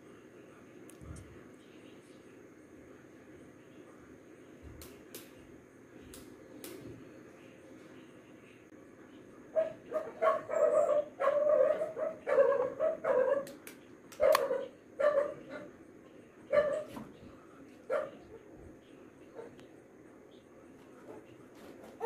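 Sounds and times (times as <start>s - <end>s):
dog barking: 9.5s - 13.5s, 14.2s - 15.7s, 16.5s - 17.0s, 17.9s - 18.4s, 19.3s - 19.6s.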